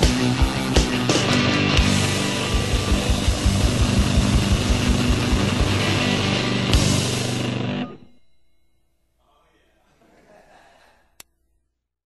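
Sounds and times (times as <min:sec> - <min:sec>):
faint recording hiss: 0:08.0 - 0:11.8.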